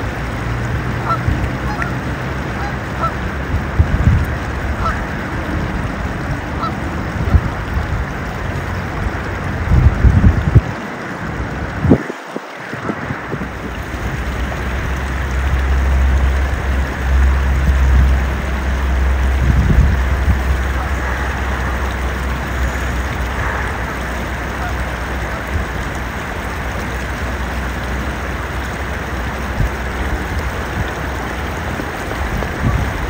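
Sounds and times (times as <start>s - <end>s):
wind rumble on microphone: 0.0s - 33.0s
geese honking: 1.0s - 3.3s, 4.7s - 5.4s, 6.5s - 7.4s, 19.9s - 26.9s.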